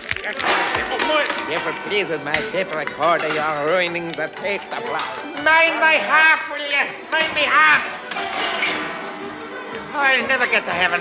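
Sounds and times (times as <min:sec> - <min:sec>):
folk band music: 0:00.4 - 0:11.0.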